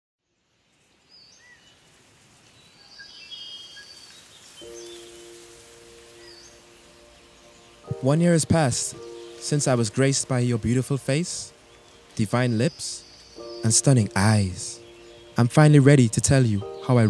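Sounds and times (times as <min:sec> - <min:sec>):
steady hiss: 0:00.6 - 0:17.0
bird chirps: 0:00.7 - 0:01.8, 0:02.5 - 0:17.0
soft sustained music chord: 0:04.0 - 0:17.0.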